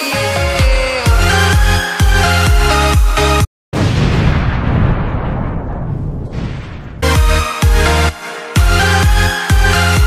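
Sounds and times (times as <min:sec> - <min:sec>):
explosion blast with rumble: 0:03.7 - 0:07.1.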